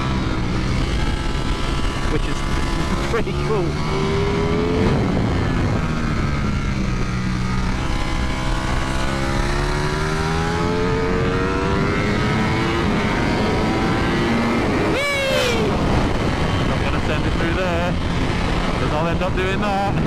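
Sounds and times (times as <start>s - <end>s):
motorcycle engine at high revs: 0.0s - 20.0s
wind noise: 0.0s - 20.0s.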